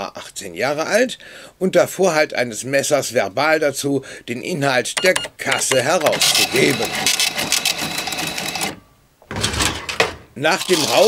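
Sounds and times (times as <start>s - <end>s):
cash register clatter: 5.1s - 11.0s.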